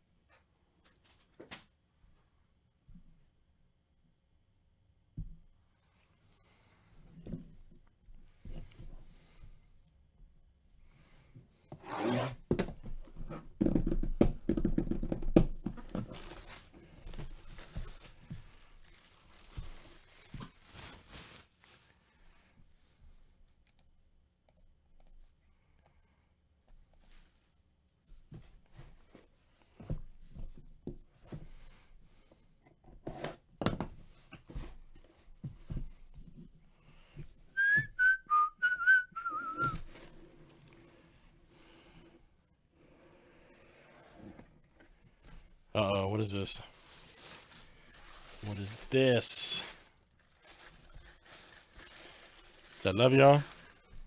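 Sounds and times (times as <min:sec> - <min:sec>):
knocks and taps on cardboard box: 0:13.6 - 0:15.8
person whistling a tune: 0:37.6 - 0:39.8.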